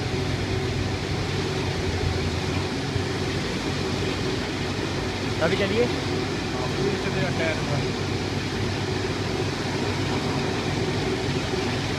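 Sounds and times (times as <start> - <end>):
jet engine idling: 0.0 - 11.9.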